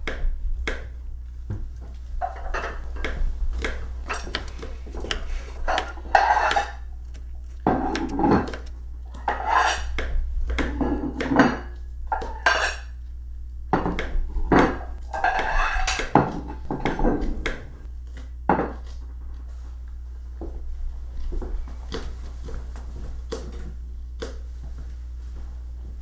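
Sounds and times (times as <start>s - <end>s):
knife chopping on plastic board: 2.9s - 8.8s
dishes and cutlery clinking: 4.0s - 4.4s, 5.0s - 7.0s, 10.7s - 13.0s, 14.5s - 17.6s.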